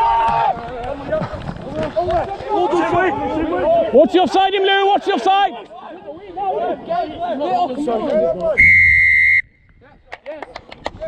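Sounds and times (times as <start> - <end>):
referee's whistle blast: 8.6 - 9.7.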